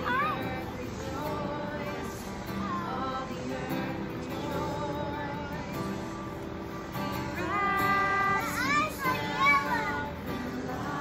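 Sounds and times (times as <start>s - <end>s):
young child's high-pitched calls: 8.3s - 10.1s.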